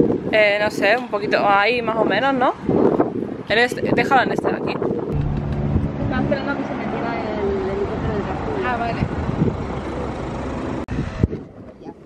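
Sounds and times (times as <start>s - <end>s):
helicopter rotor and engine rumble: 5.1s - 10.8s.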